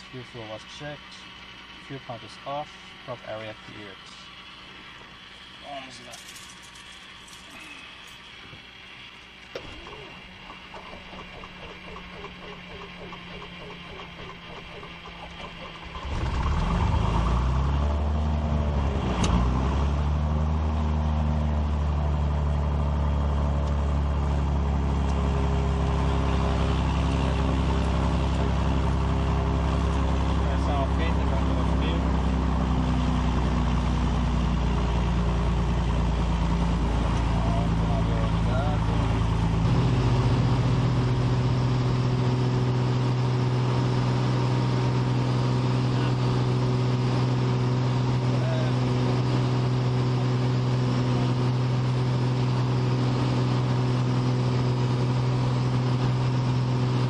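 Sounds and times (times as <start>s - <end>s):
aircraft piston engine starting and running: 0.0s - 57.0s.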